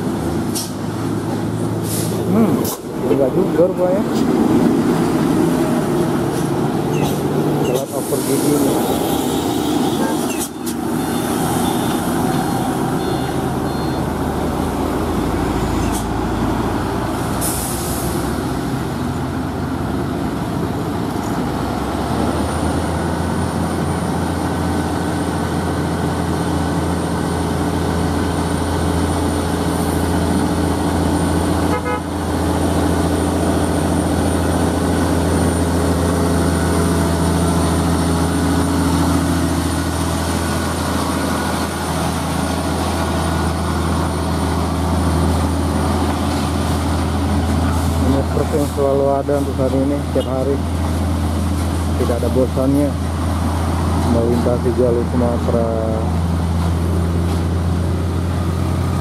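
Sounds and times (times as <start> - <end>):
diesel truck engine labouring: 0.0 - 59.0.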